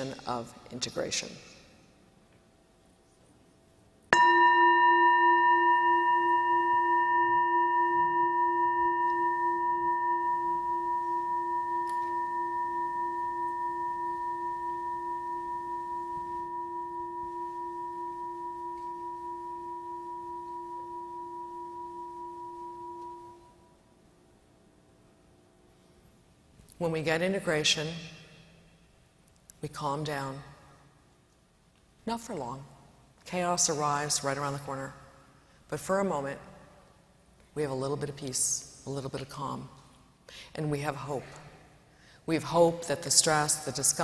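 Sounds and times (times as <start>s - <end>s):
singing bowl ringing: 4.1s - 23.9s.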